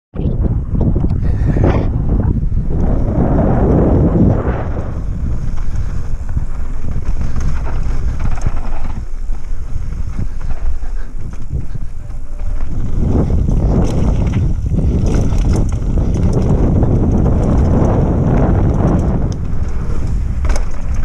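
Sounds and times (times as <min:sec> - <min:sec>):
wind buffeting microphone: 0:00.1 - 0:21.0
bike tyres rumbling and rattling: 0:00.2 - 0:21.0.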